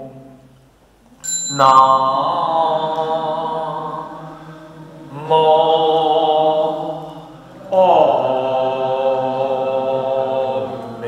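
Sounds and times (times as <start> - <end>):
hand-held temple chime ringing: 1.2 - 2.4
man chanting: 1.5 - 11.0.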